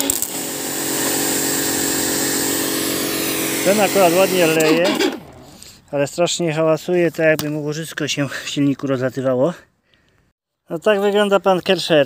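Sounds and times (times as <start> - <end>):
pressure washer motor and pump: 0.0 - 5.7.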